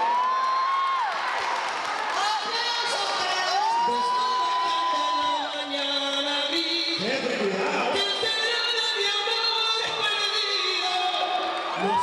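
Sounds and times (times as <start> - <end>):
crowd cheering and whooping: 0.0 - 6.0, 9.9 - 12.0.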